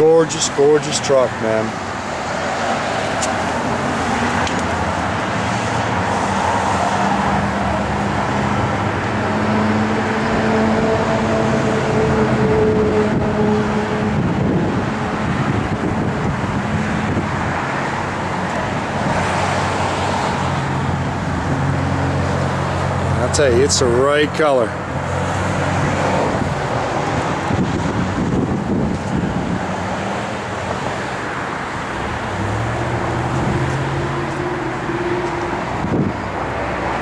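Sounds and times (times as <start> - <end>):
road traffic noise: 0.0 - 37.0.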